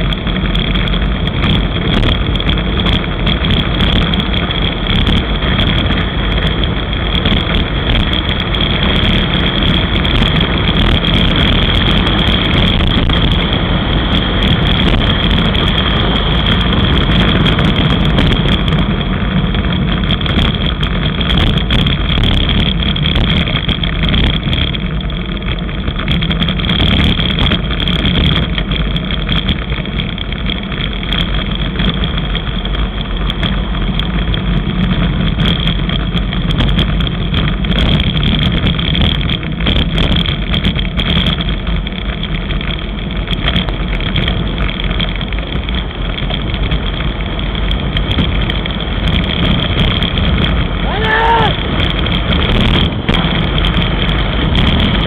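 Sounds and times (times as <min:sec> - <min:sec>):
tyre and road rumble: 0:00.0 - 0:55.0
wind rushing over microphone: 0:00.0 - 0:55.0.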